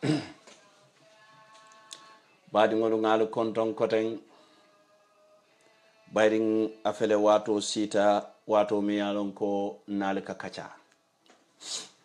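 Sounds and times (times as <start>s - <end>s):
man speaking: 6.2s - 10.8s.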